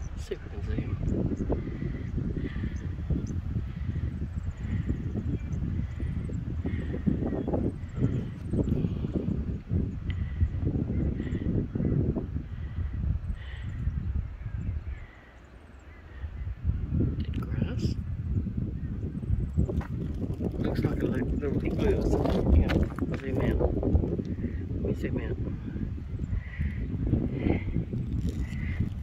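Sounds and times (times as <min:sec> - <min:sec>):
wind buffeting microphone: 0:00.0 - 0:29.0.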